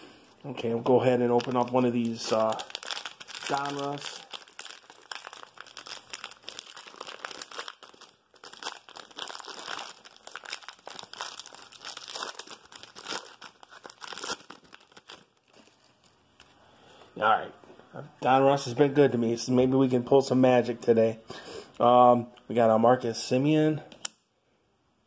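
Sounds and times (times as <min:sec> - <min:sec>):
wrapper crinkling and tearing: 0:01.1 - 0:16.2.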